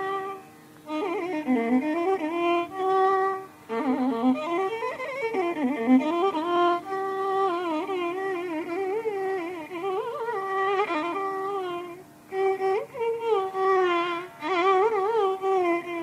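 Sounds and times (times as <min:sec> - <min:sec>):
violin melody with sliding notes: 0:00.0 - 0:16.0.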